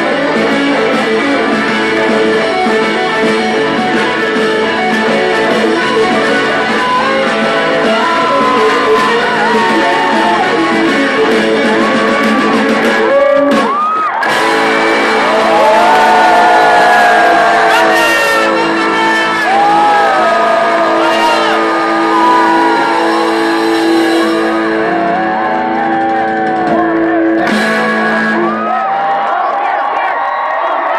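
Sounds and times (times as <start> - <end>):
electric guitar bending notes: 0.0 - 29.0
live pop-rock band: 0.0 - 29.9.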